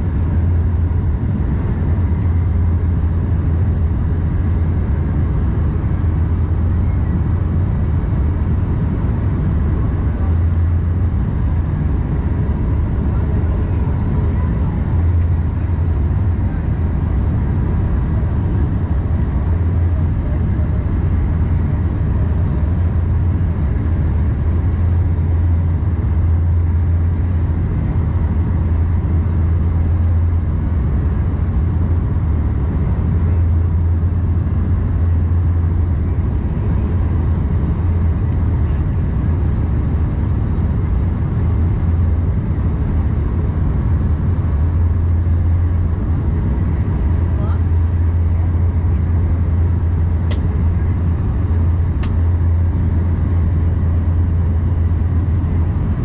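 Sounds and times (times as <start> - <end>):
propeller drone: 0.0 - 56.0
rushing engine and air noise: 0.0 - 56.0.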